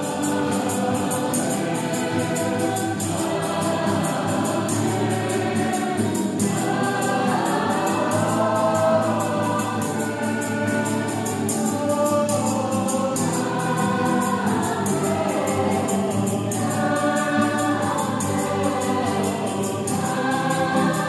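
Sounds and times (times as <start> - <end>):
acoustic guitars: 0.0 - 21.0
choir singing a hymn: 0.0 - 21.0.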